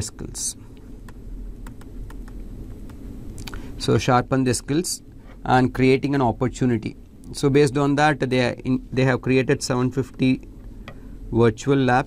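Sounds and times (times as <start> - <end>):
low steady hum: 0.0 - 12.0
stylus tapping on tablet screen: 1.1 - 3.0.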